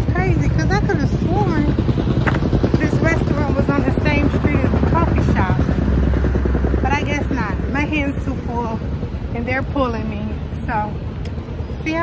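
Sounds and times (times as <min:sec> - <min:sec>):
voices: 0:00.0 - 0:05.8, 0:06.7 - 0:12.0
vehicle engine rumble: 0:00.0 - 0:12.0.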